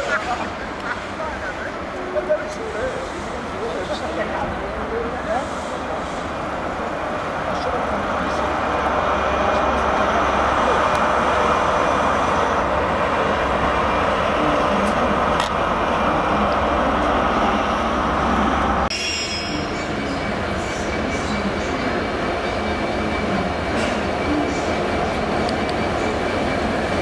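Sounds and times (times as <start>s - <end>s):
approaching diesel freight train: 0.0s - 27.0s
train rail noise: 0.0s - 27.0s.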